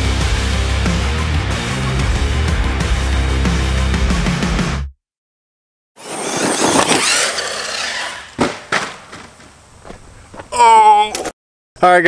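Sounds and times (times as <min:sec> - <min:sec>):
electric motor whine: 0:06.0 - 0:08.4
tires throwing dirt: 0:06.0 - 0:10.6
sharp knocks: 0:08.4 - 0:10.5.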